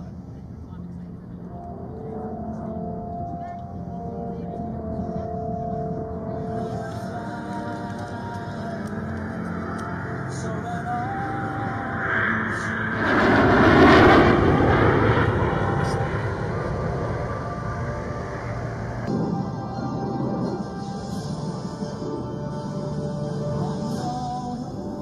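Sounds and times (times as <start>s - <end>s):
background music: 0.0s - 25.0s
aircraft flying past: 8.8s - 23.8s.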